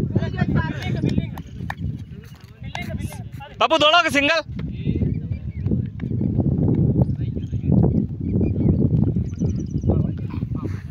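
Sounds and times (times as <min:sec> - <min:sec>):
bird chirping: 0:07.1 - 0:10.5.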